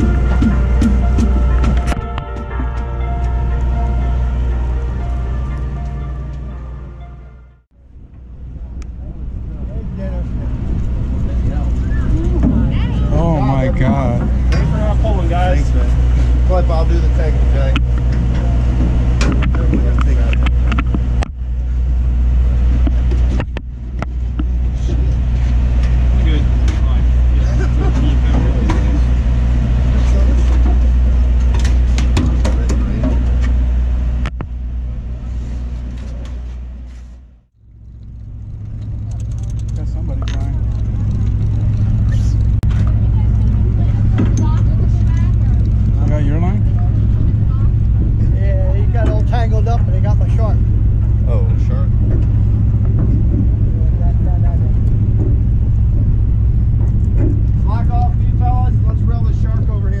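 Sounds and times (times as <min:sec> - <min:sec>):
boat engine drone: 0:00.0 - 1:00.0
indistinct voices: 0:08.9 - 0:20.6.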